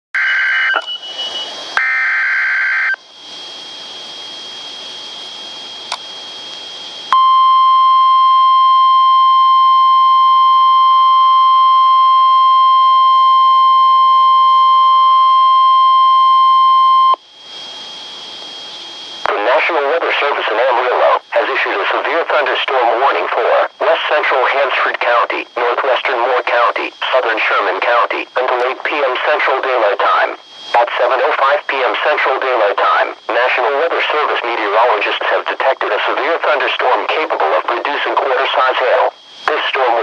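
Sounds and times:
steady warning alarm tone: 0:00.2 - 0:40.0
radio hiss: 0:17.5 - 0:40.0.

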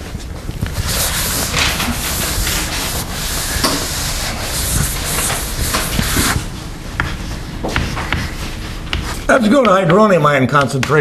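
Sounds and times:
eraser scrubbing a blackboard: 0:00.6 - 0:09.3.

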